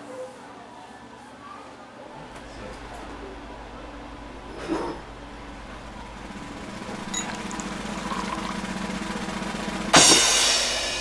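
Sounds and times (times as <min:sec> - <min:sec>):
low droning hum: 0:02.2 - 0:11.0.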